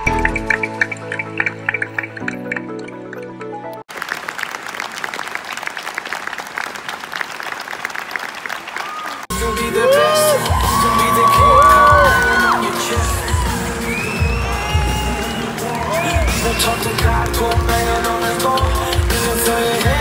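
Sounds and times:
audience applauding: 3.8s - 20.0s
voices cheering and whooping: 8.8s - 17.0s
loud music: 9.3s - 20.0s.

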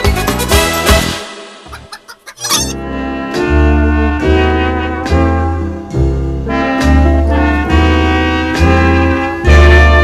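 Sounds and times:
cartoon chicken clucking and squawking: 0.0s - 2.8s
jaunty brass theme tune: 0.3s - 1.6s, 2.5s - 10.0s.

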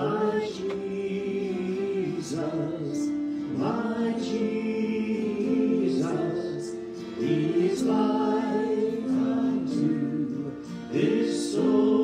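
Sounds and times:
acoustic guitar: 0.0s - 12.0s
voices singing worship chorus: 0.0s - 12.0s.

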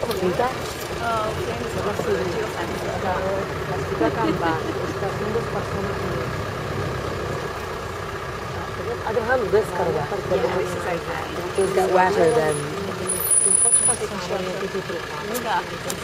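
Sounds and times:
faint voices: 0.0s - 16.0s
jeep engine rumbling: 0.0s - 16.0s.

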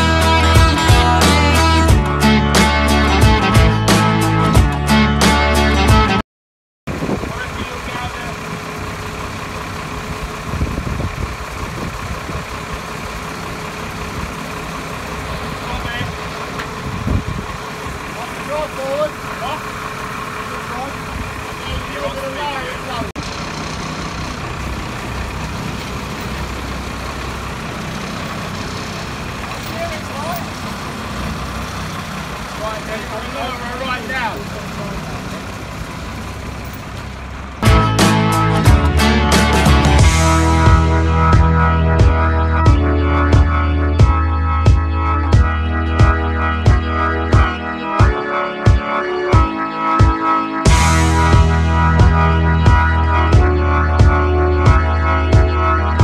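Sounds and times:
truck engine idling: 0.0s - 6.1s, 6.9s - 56.0s.

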